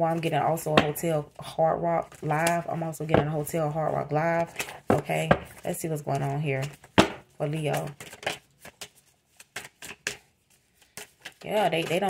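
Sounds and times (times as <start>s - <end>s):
cards being shuffled: 5.5s - 12.0s.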